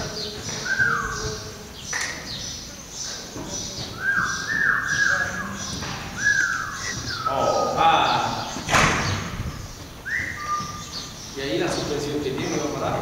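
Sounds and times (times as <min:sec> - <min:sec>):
small birds chirping: 0:00.0 - 0:13.0.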